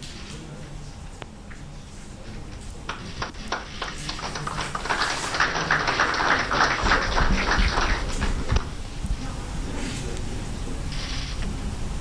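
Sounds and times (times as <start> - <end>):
applause: 2.9 - 8.8.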